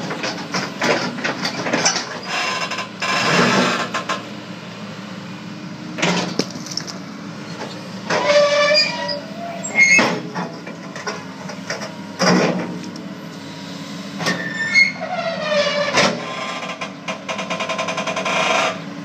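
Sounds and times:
excavator engine running: 0:00.0 - 0:19.0
high metallic squeals: 0:08.1 - 0:10.2, 0:14.3 - 0:16.6.

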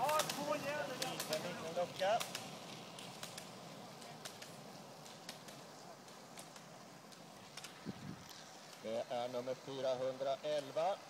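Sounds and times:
ski pole tips clicking on asphalt: 0:00.0 - 0:08.9.

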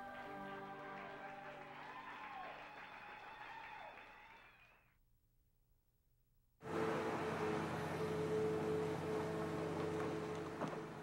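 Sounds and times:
diesel engine running steadily: 0:06.7 - 0:11.0.

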